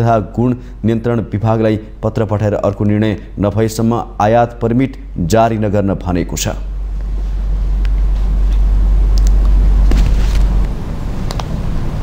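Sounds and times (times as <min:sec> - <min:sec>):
steady low rumble: 0:06.5 - 0:12.0.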